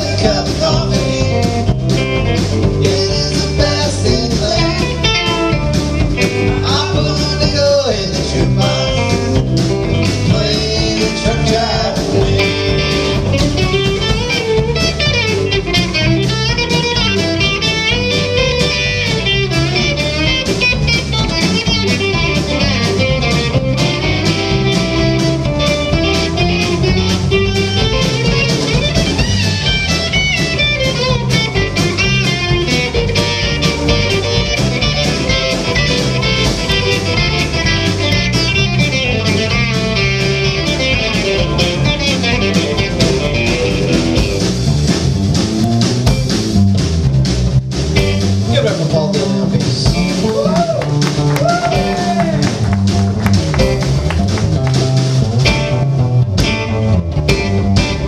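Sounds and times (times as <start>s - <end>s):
bass guitar: 0.0s - 58.0s
electric guitar: 0.0s - 58.0s
steady drum beat: 0.0s - 58.0s.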